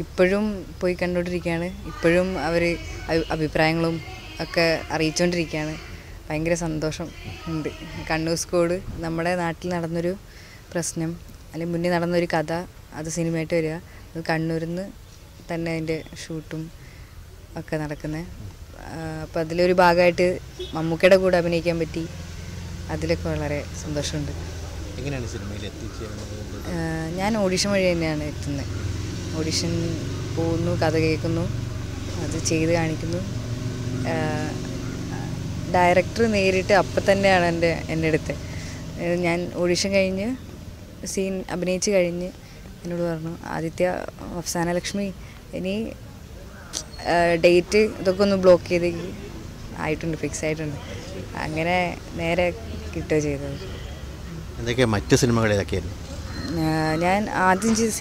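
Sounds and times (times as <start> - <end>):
low background hum: 0.0 - 58.0.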